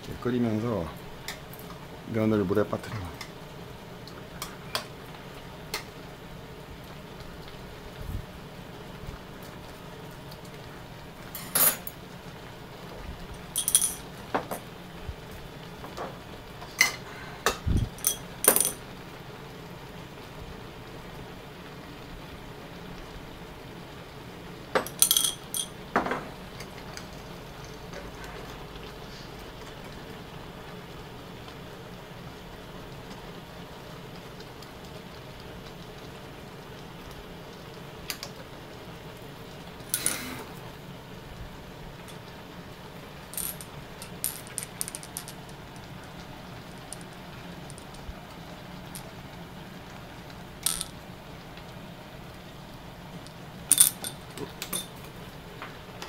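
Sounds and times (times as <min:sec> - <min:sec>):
gas burner hissing: 0:00.0 - 0:56.0
metallic clinks of kitchenware: 0:11.4 - 0:11.9.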